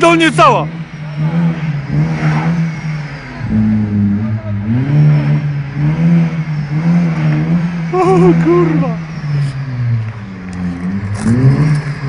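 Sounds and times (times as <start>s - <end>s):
car engine revving: 0.0s - 12.0s.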